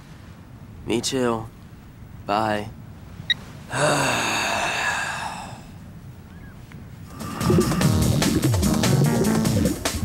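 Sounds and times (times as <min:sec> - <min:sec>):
man sighing heavily: 0:03.7 - 0:05.8, 0:07.1 - 0:08.1.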